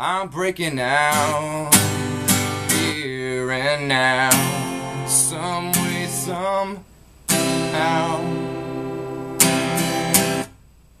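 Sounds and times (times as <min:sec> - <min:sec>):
acoustic guitar strumming chords: 0:00.4 - 0:10.6.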